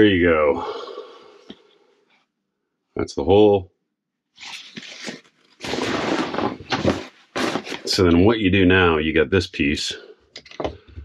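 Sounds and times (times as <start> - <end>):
heavy canvas rustling and scraping: 5.0 - 8.0.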